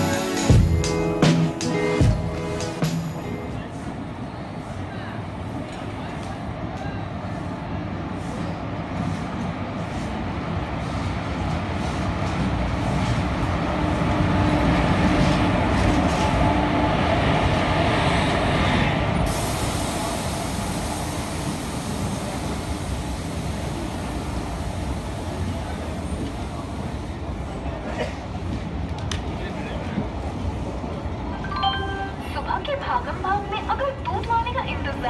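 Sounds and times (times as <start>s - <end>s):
train wheels rumbling on rails: 0.0s - 31.4s.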